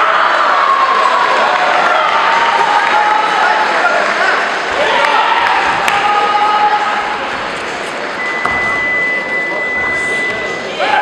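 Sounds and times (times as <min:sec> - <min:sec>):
crowd voices shouting: 0:00.0 - 0:08.3, 0:10.5 - 0:11.0
steady high tone: 0:08.0 - 0:11.0.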